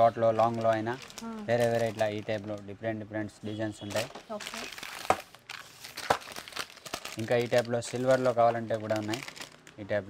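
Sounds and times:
plastic packets crinkling: 0.0 - 2.8, 3.8 - 10.0.

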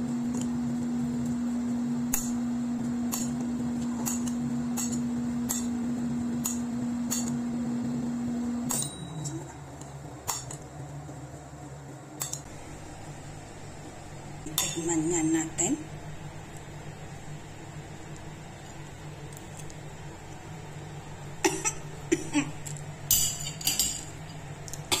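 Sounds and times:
metal spoon clinking ceramic bowl: 8.7 - 9.4, 23.1 - 24.2
woman coughing: 21.4 - 22.6.

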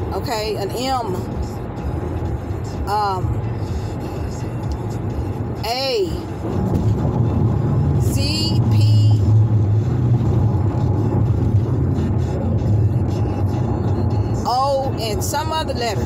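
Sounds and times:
car interior rumble: 0.0 - 16.0.

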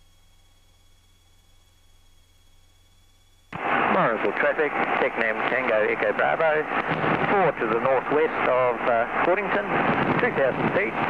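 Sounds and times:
faint hiss with steady tone: 0.0 - 11.0
pilot voice over radio: 3.6 - 11.0.

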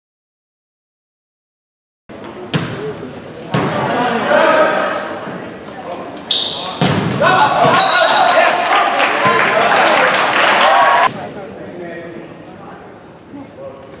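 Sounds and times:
shoe squeaks on court: 3.2 - 3.6, 5.0 - 6.8
volleyball hits: 6.6 - 8.3
crowd cheering: 7.2 - 11.1
players and spectators shouting: 7.2 - 11.1.

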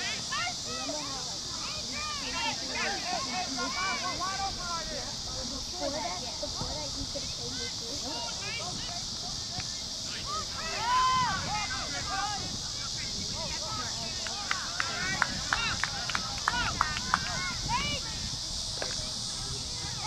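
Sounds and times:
distant shouts: 0.0 - 5.4, 7.3 - 20.0
steady high hiss: 0.0 - 20.0.

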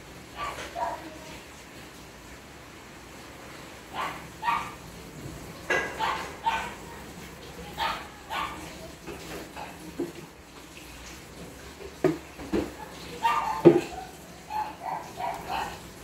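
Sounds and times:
dog barking: 0.4 - 1.3, 3.9 - 4.9, 5.7 - 7.1, 7.7 - 8.9, 12.8 - 16.0.

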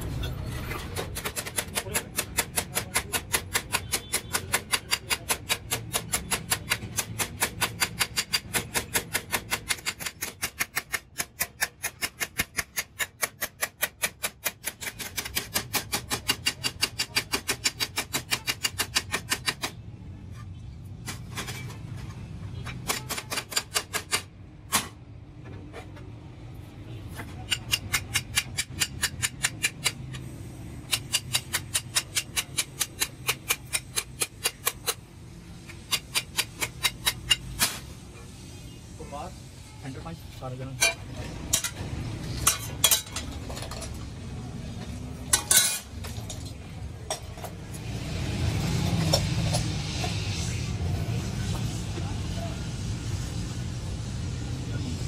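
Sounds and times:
hammer striking sheet steel: 0.8 - 19.8, 27.3 - 35.0, 35.7 - 38.0.

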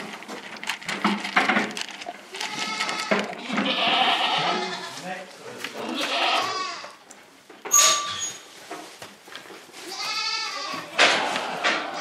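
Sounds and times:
goats bleating: 2.4 - 5.0, 5.8 - 7.0, 9.8 - 12.0.

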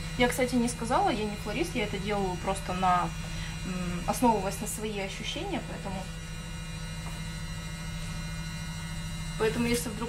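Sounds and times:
washing machine humming: 0.0 - 10.0.

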